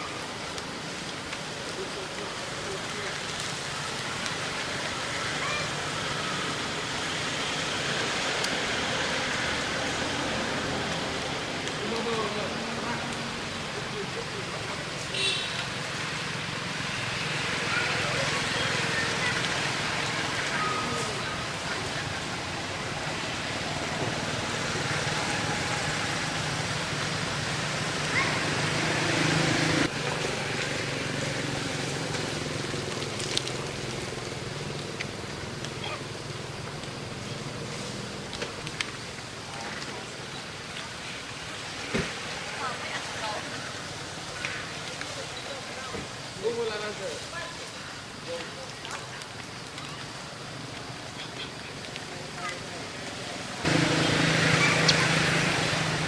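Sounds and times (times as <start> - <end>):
outdoor background noise: 0.0 - 56.0
faint voices talking: 17.4 - 26.4.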